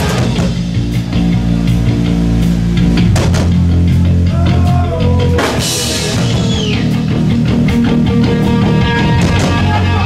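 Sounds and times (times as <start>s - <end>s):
drum kit and cymbal hits: 0.0s - 10.0s
electric guitar and bass chords: 0.0s - 10.0s
live rock band instrumental: 0.0s - 10.0s.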